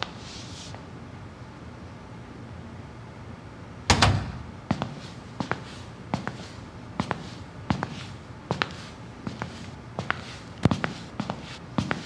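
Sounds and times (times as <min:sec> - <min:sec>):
door slamming shut: 0:03.9 - 0:04.4.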